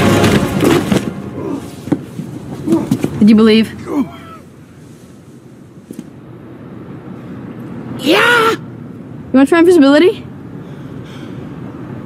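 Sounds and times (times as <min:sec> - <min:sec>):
low outdoor rumble: 0:00.0 - 0:12.0.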